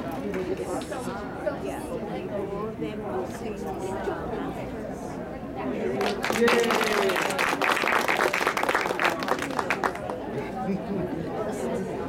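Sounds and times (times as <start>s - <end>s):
murmur of voices: 0.0s - 12.0s
spectators clapping: 5.9s - 10.3s.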